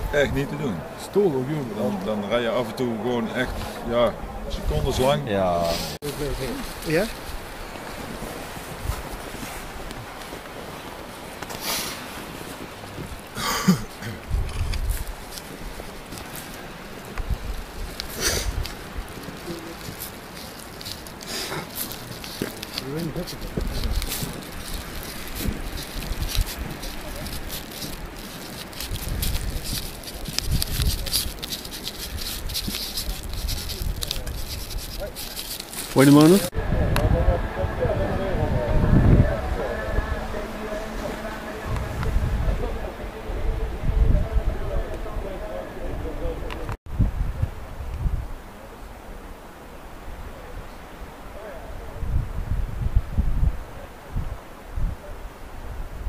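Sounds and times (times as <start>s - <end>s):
wind buffeting microphone: 0.0s - 11.4s, 12.0s - 49.4s, 50.0s - 56.0s
faint background voices: 15.6s - 46.8s
marker scratching on banner: 19.3s - 36.5s.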